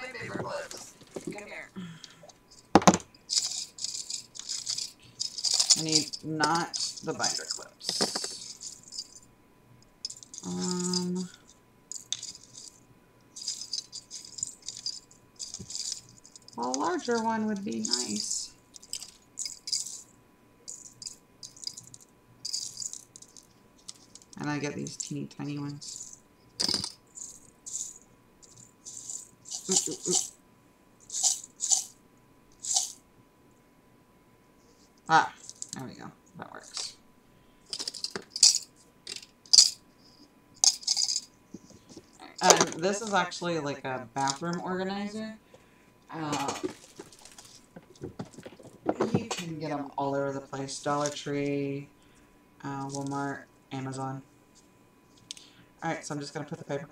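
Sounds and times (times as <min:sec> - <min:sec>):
paper clips rattling and clinking: 0:03.3 - 0:09.2, 0:10.1 - 0:12.8, 0:13.4 - 0:20.0, 0:25.8 - 0:30.3, 0:31.1 - 0:31.9, 0:32.6 - 0:33.0, 0:37.7 - 0:39.8, 0:40.6 - 0:41.3.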